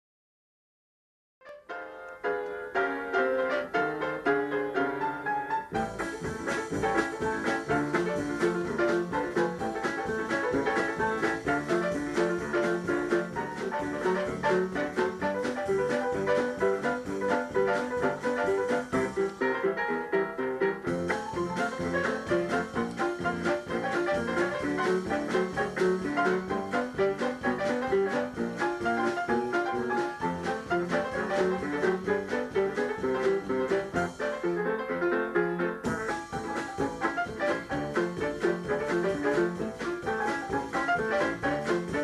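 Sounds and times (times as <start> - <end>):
jazz piano improvisation: 1.4 - 42.0.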